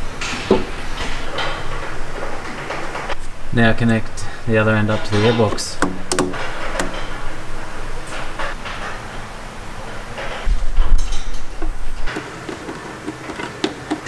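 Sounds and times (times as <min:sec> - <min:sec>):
tools and parts clicking and knocking: 0:05.1 - 0:07.2, 0:12.1 - 0:14.0
heavy low rumble: 0:06.4 - 0:12.1.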